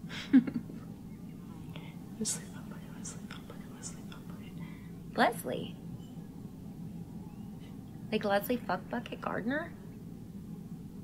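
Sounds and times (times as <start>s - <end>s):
steady low hum: 0.0s - 11.0s
woman whispering: 1.7s - 4.6s.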